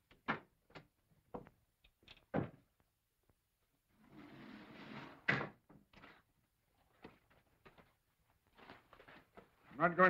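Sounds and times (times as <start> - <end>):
stone door sliding: 4.0 - 5.5.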